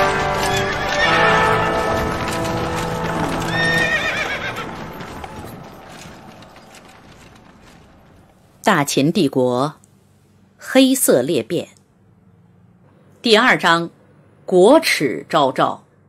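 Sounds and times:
theme music: 0.0s - 6.6s
hoofbeats: 0.0s - 8.5s
horse whinnying: 2.2s - 7.0s.

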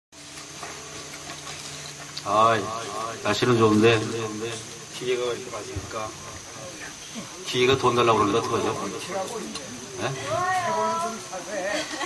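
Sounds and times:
sound system hiss: 0.2s - 12.0s.

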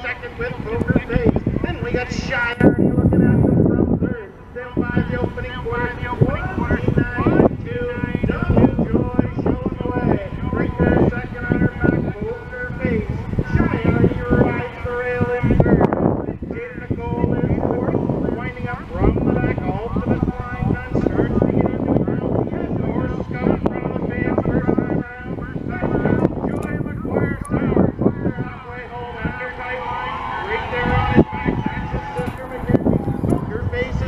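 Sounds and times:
announcer over loudspeakers: 0.0s - 34.0s.

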